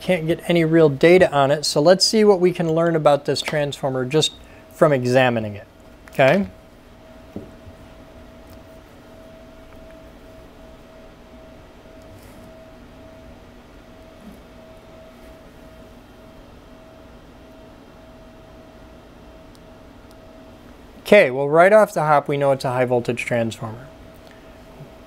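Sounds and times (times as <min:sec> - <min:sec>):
faint electrical fan hum: 0:00.0 - 0:25.0.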